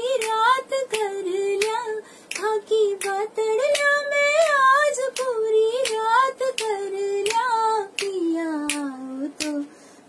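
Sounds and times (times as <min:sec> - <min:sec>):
woman singing unaccompanied: 0:00.0 - 0:09.7.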